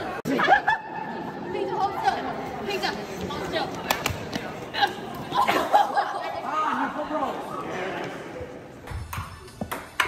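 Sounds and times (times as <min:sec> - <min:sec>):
young people chattering: 0:00.0 - 0:08.8.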